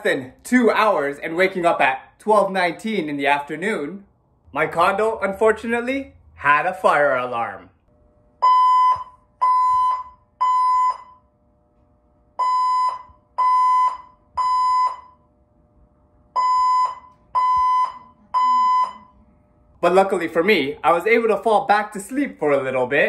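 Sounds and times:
fire alarm beeps: 8.4 - 11.2, 12.4 - 15.3, 16.4 - 19.2.

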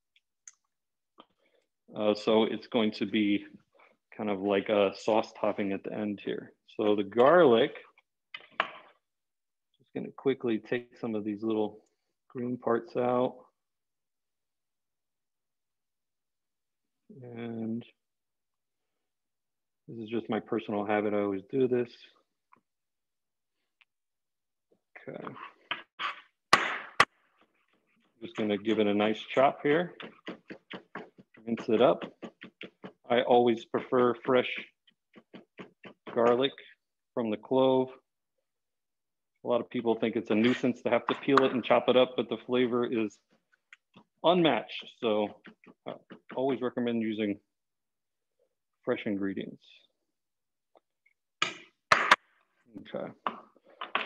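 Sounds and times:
knife chopping on plastic board: 30.0 - 33.1, 35.1 - 36.4.

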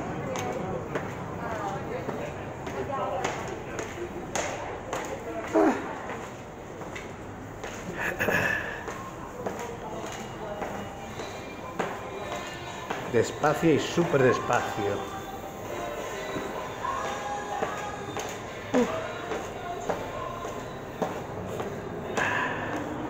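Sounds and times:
footsteps on concrete stairs: 0.0 - 8.1, 8.8 - 13.6, 17.6 - 23.0
background voices: 6.7 - 23.0.

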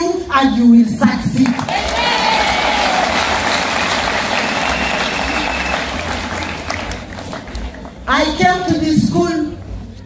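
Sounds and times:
audience applauding: 1.5 - 8.0.

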